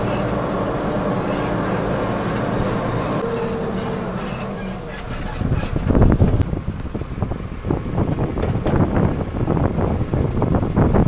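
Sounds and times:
clattering and rattling: 0:00.0 - 0:06.4
earthmoving machine engine running: 0:00.0 - 0:11.0.

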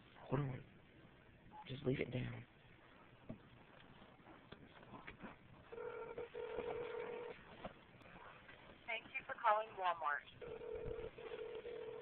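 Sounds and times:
telephone ringback tone: 0:05.7 - 0:07.4, 0:10.4 - 0:12.0.

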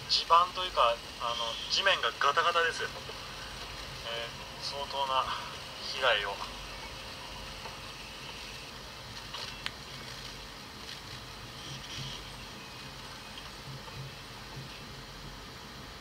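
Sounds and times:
faint vehicle cabin rumble: 0:00.0 - 0:16.0.

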